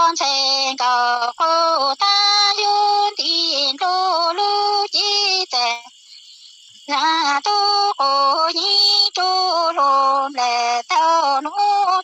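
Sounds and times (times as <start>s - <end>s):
woman singing unaccompanied: 0.0s - 6.1s, 6.8s - 12.0s.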